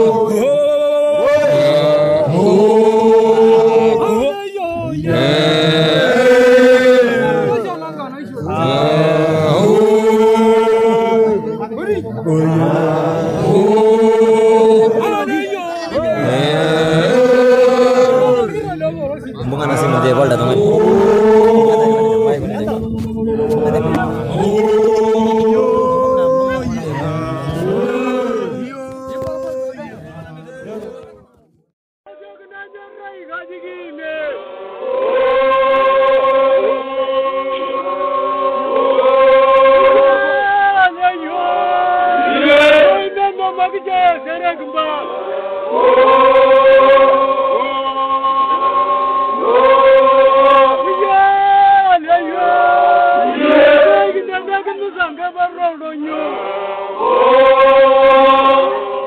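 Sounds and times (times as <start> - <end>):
men chanting in group: 0.0 - 31.2, 38.3 - 54.8.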